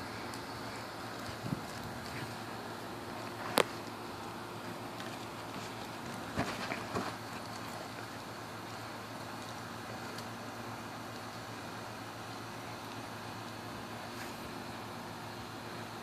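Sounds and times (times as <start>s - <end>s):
steady background hiss: 0.0s - 16.0s.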